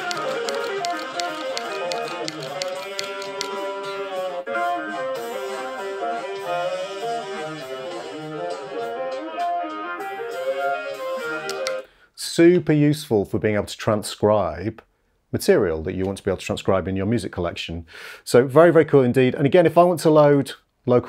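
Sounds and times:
steady ticking beat: 0.0 - 3.7.

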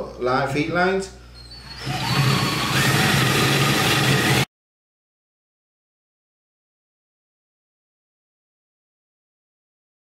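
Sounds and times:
cordless drill boring through steel: 1.5 - 4.5.

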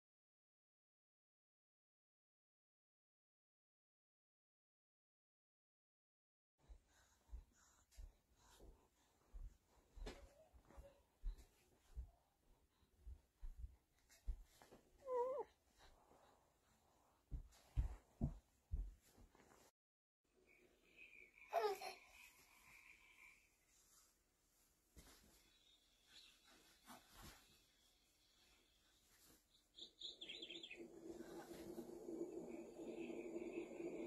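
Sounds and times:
baby cooing: 15.0 - 15.5, 21.4 - 22.2
high bird-like chirps: 29.8 - 30.9.

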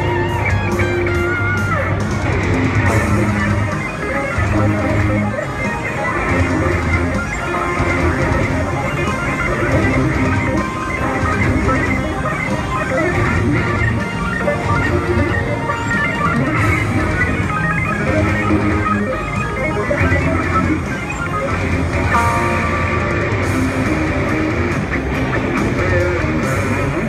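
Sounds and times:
electric guitars jamming: 0.0 - 27.0.

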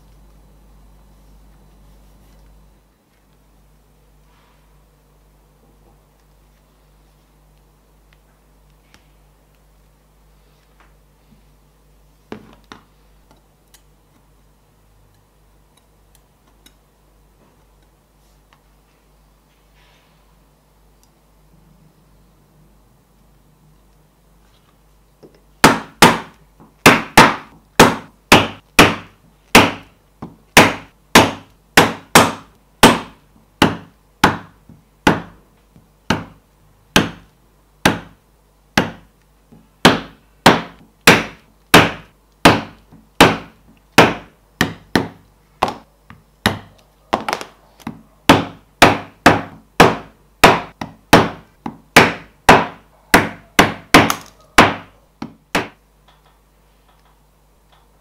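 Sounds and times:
mallet striking chisel through leather: 25.6 - 35.4, 36.1 - 38.2, 38.8 - 39.1, 39.8 - 45.8, 48.3 - 55.8.

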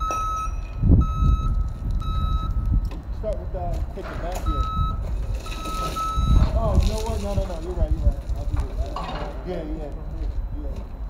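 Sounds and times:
reverse alarm beeping: 0.0 - 2.9, 4.4 - 6.7
low engine rumble: 0.0 - 11.0.

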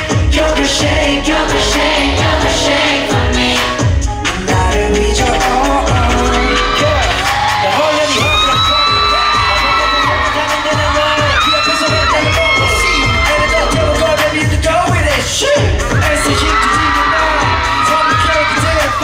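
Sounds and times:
heavy kick drum: 0.0 - 7.5, 8.1 - 19.0
pop dance track with male vocals: 0.0 - 19.0.

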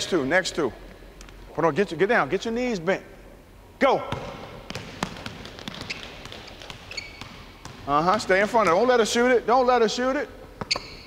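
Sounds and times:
basketball bouncing on hardwood: 4.1 - 8.8.

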